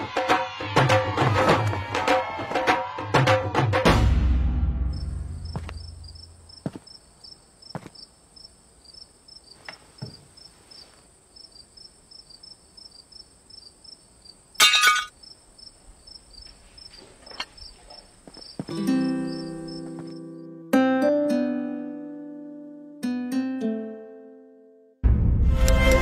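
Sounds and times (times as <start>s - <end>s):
crickets chirping: 4.8s - 20.6s.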